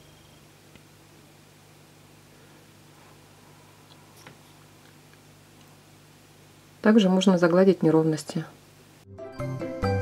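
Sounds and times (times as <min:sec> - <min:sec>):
faint low hum: 0:00.0 - 0:09.1.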